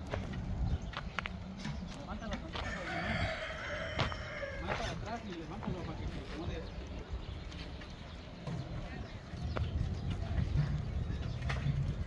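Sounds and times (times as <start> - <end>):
rooster crowing: 2.6 - 4.9.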